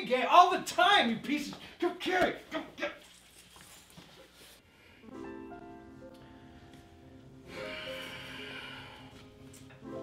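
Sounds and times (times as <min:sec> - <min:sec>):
soft rustles: 0:03.0 - 0:04.6.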